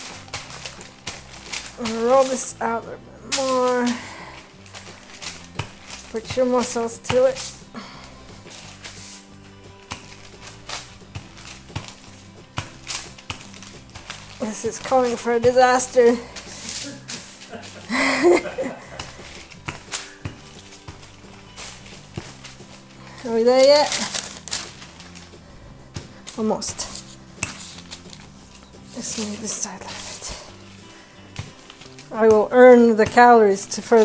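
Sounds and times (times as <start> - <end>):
parchment paper rustling: 0.0 - 34.0
quiet background music: 0.0 - 34.0.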